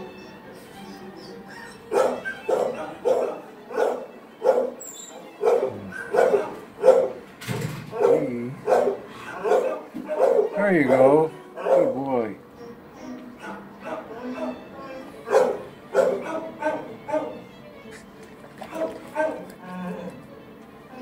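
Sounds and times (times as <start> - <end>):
dog barking: 1.9 - 4.8, 5.4 - 7.2, 7.9 - 12.0, 13.4 - 17.4, 18.7 - 19.5.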